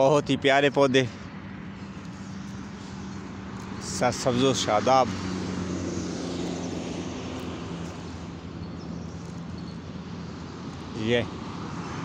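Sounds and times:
constant hum: 0:00.0 - 0:11.9.

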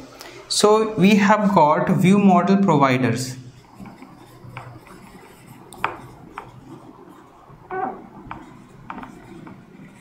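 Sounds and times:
marker squeaking on whiteboard: 0:03.5 - 0:10.0.

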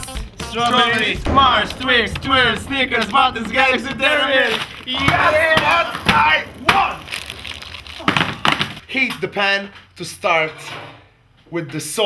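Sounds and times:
plastic wrappers crinkling: 0:01.8 - 0:08.8.

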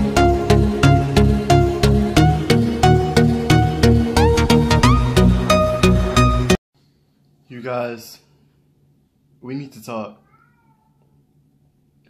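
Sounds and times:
cat meowing: 0:10.2 - 0:11.2.

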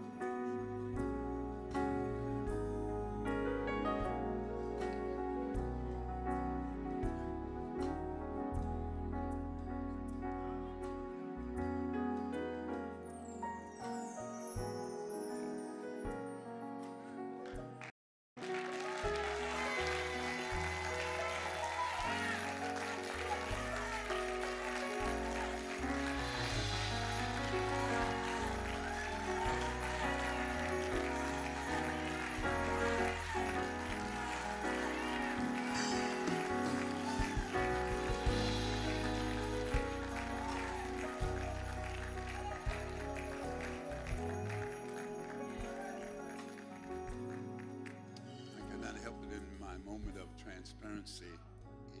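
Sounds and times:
church praise music: 0:00.0 - 0:52.0
hand-clapping: 0:17.4 - 0:49.1
congregation calling out: 0:18.6 - 0:44.6.

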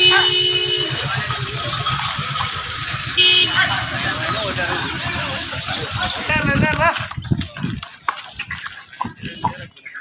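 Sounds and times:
hooves on concrete: 0:00.0 - 0:10.0
people's voices and calls: 0:00.0 - 0:10.0.

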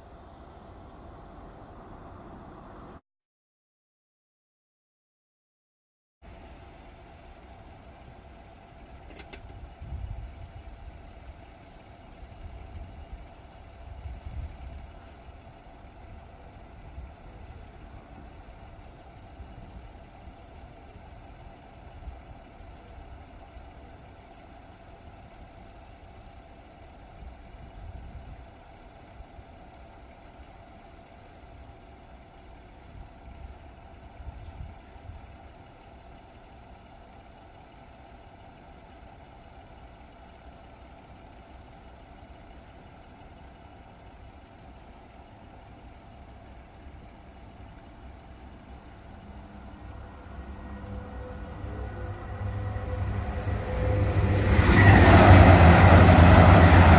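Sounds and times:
vehicle engine idling: 0:00.0 - 0:03.0, 0:06.2 - 0:56.9.

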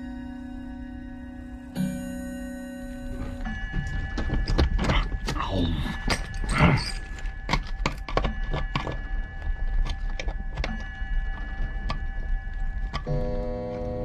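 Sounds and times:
held musical chord: 0:00.0 - 0:04.3
small clicks and knocks: 0:06.0 - 0:13.2.

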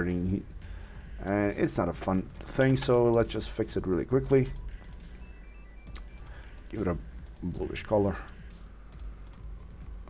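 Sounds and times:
computer keyboard keys clicking: 0:02.4 - 0:03.5, 0:05.8 - 0:09.8.

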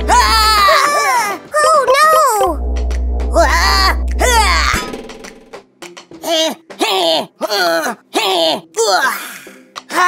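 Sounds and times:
steady low hum: 0:02.4 - 0:05.1.

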